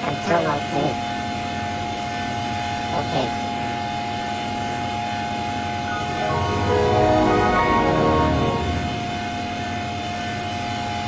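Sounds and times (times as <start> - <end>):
stacked electronic tones: 5.5 - 9.4.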